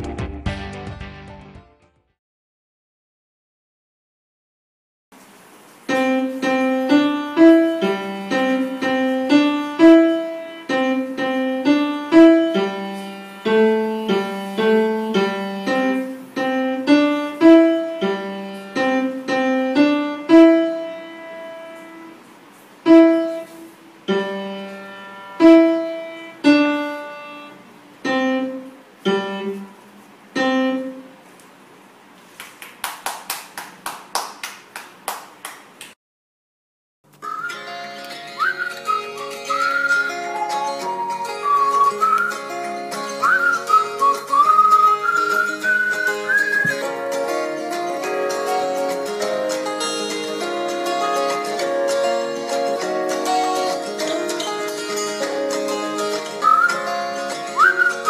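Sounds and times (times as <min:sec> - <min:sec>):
upright piano slow tune: 0:05.8 - 0:31.3, 0:37.2 - 0:58.0
sharp claps: 0:32.3 - 0:36.0.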